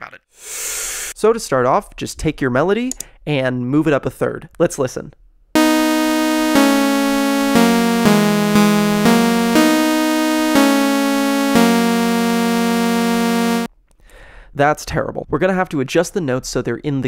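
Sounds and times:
synthesizer melody with harmony: 5.6s - 13.7s.

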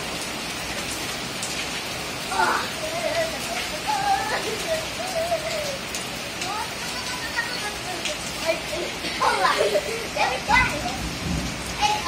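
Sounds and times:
rain on a tiled floor: 0.0s - 12.0s
children calling out: 2.2s - 12.0s.

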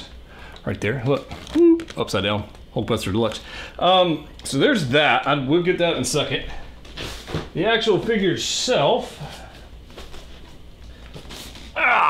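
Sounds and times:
man speaking: 0.6s - 6.6s, 7.6s - 9.4s.

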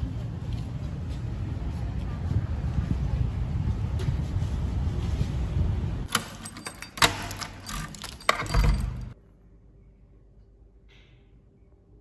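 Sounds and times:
low rumble on microphone: 0.0s - 6.1s
keys jangling: 6.1s - 9.2s.

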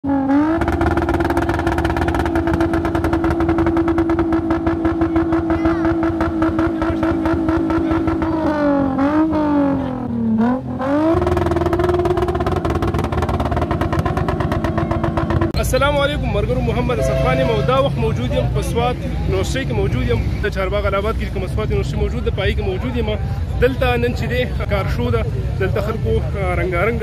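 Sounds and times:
car engine revving high: 0.0s - 15.6s, 16.7s - 18.6s.

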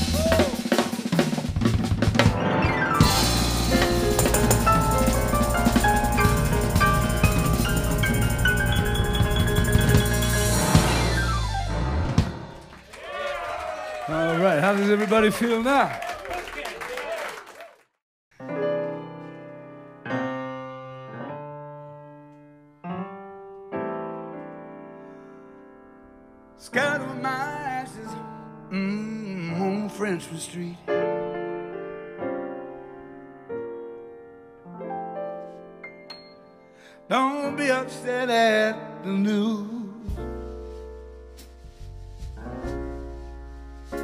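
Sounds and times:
funk band playing: 0.0s - 12.7s
drum kit and percussion hits: 0.0s - 12.9s
piano chords ringing: 2.2s - 12.7s, 18.4s - 44.0s.

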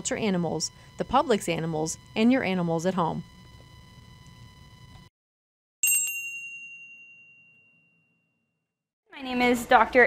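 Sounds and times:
bell-like ding: 5.8s - 8.6s.

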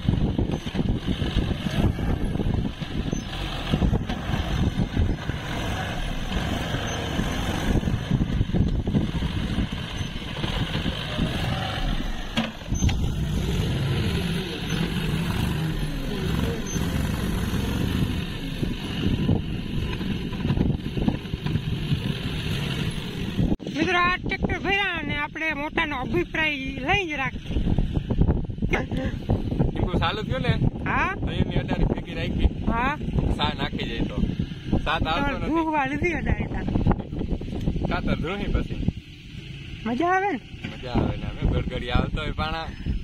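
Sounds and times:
tractor diesel engine running: 0.0s - 31.2s
loader scooping soil: 0.1s - 23.6s.

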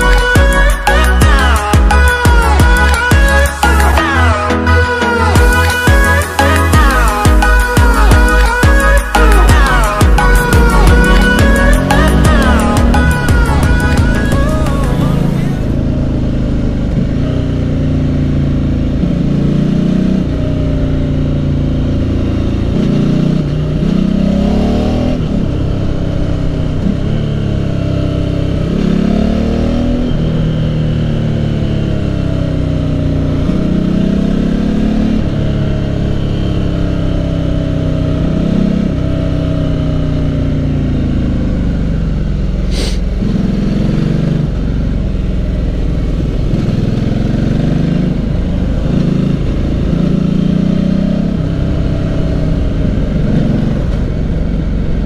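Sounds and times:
motorcycle engine accelerating: 0.0s - 55.0s.

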